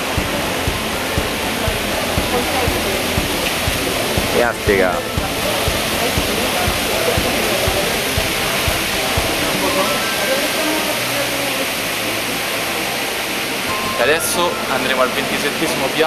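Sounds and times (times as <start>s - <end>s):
fountain water cascading: 0.0s - 16.0s
murmur of voices: 0.0s - 16.0s.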